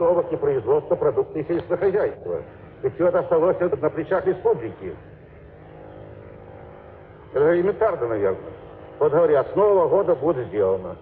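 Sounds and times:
recording hum and hiss: 0:00.0 - 0:11.0.

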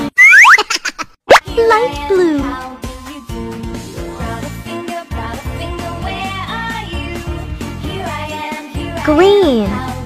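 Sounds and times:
children's music: 0:01.3 - 0:10.0.

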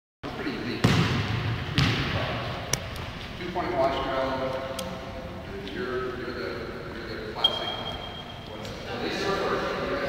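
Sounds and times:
volleyball hitting hardwood floor: 0:00.8 - 0:02.2.

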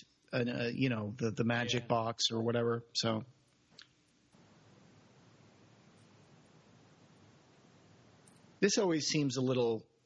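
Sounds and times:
faint room hiss: 0:00.0 - 0:10.0
man speaking: 0:00.3 - 0:03.4, 0:08.6 - 0:10.0.

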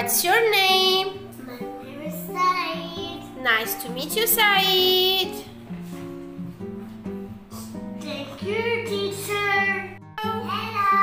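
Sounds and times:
child's voice: 0:01.4 - 0:03.4, 0:08.0 - 0:11.0.

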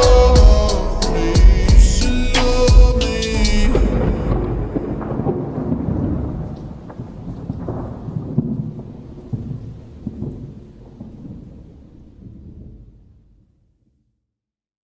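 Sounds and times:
low rumbling crackling noise: 0:00.0 - 0:14.0.

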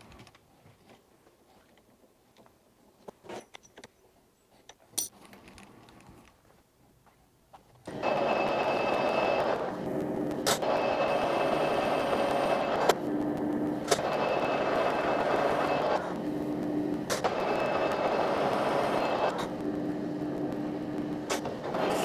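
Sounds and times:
metal lathe running: 0:10.6 - 0:13.0.

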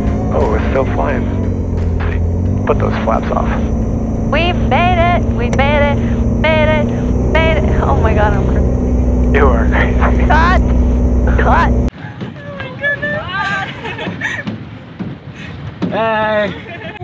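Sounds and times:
propeller engine running: 0:00.0 - 0:11.9
voices: 0:00.0 - 0:14.0.

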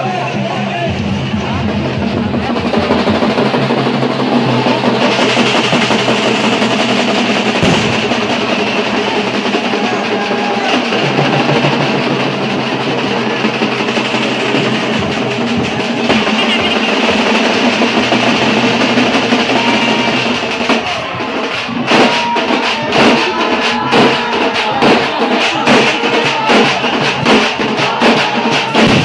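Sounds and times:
drummers beating large drums: 0:00.0 - 0:29.0.

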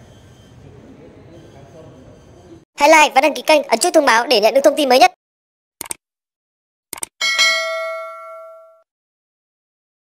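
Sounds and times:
notification bell ding: 0:07.2 - 0:08.8.

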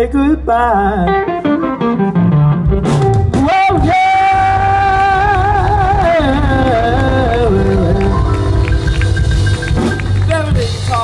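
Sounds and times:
bass and drums: 0:00.0 - 0:11.0
electric guitar long high note: 0:01.0 - 0:11.0.

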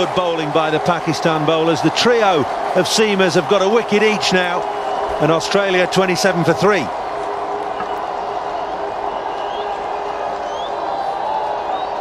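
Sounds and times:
murmur of spectators: 0:00.0 - 0:12.0.

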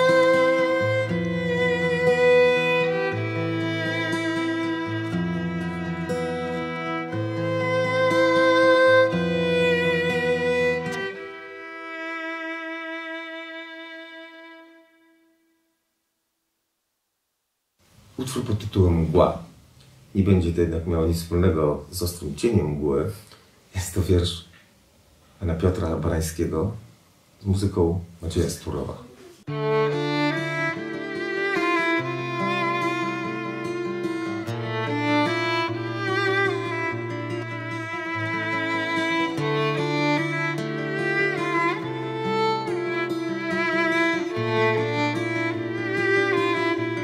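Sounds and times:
acoustic guitar: 0:00.0 - 0:13.4, 0:29.1 - 0:47.0
violin: 0:00.0 - 0:15.6, 0:29.0 - 0:47.0.

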